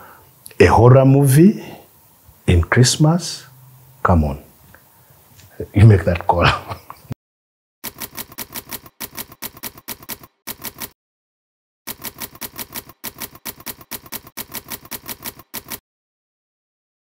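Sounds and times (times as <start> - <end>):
manual typewriter keys clicking: 7.8 - 11.0, 11.9 - 15.8.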